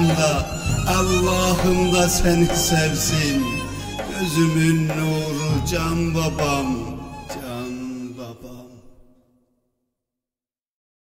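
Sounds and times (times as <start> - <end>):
sustained chanted hymn tone: 0.0 - 9.2.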